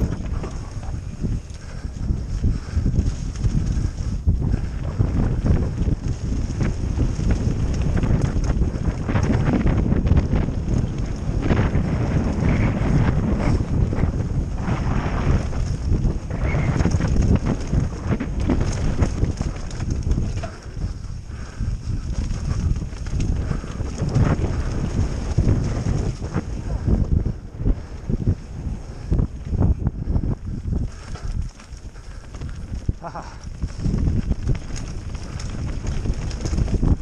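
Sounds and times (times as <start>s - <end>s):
bike knocking and rattling: 0.0s - 37.0s
tyre noise on dirt: 0.0s - 37.0s
wind buffeting camera: 0.0s - 37.0s.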